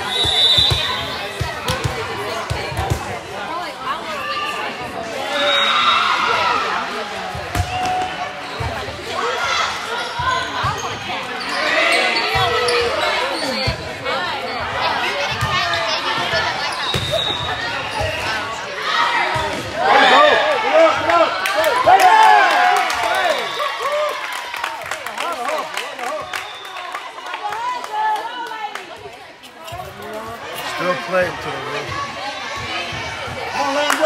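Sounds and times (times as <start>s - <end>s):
players and spectators cheering: 18.7s - 29.0s.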